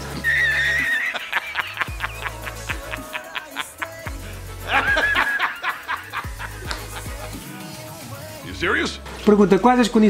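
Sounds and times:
man laughing heartily: 0:00.0 - 0:07.7
horse-like whinny: 0:00.2 - 0:01.1.

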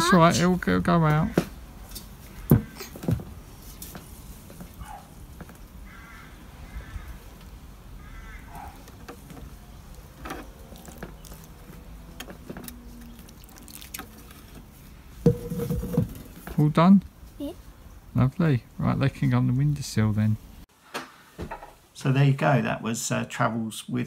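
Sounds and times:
water trickling onto soil: 0:09.4 - 0:14.9.

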